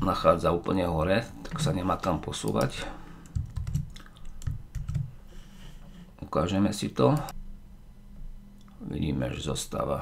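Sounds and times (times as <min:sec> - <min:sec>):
keyboard keystrokes clicking: 0:02.0 - 0:05.1.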